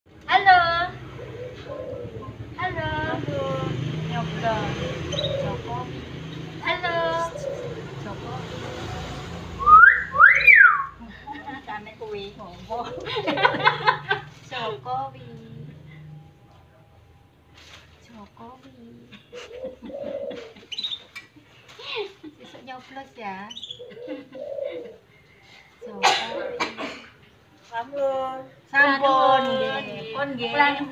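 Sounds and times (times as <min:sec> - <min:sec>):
myna bird speech-like calls: 0:00.3 - 0:08.7.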